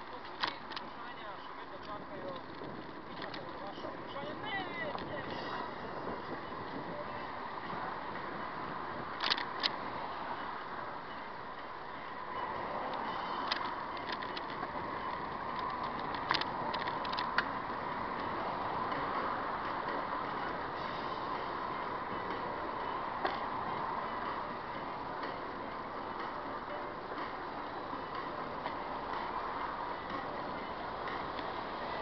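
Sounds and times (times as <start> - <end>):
street traffic noise: 0.0 - 32.0
sharp clicks and rattles: 9.2 - 9.8, 12.9 - 17.5.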